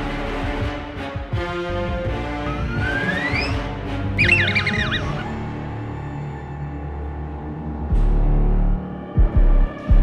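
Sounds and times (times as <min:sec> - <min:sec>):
background music: 0:00.0 - 0:10.0
robot electronic chirping: 0:04.2 - 0:05.2.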